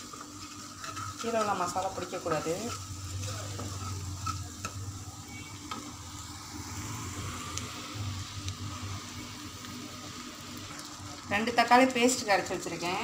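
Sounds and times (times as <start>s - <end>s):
vegetables sizzling in oil: 0.0s - 13.0s
wooden spatula scraping pan: 0.1s - 4.8s.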